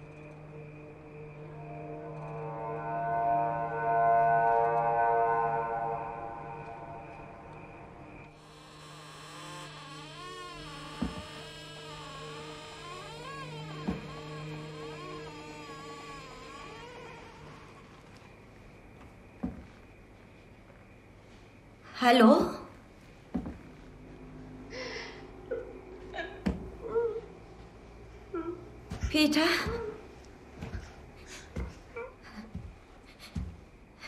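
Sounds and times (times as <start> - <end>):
low hum: 0.0 - 18.3
droning chord: 0.9 - 7.1.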